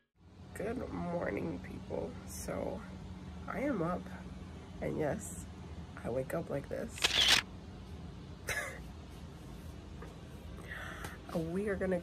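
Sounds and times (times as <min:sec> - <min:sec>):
camera shutter click: 0:07.0 - 0:07.4.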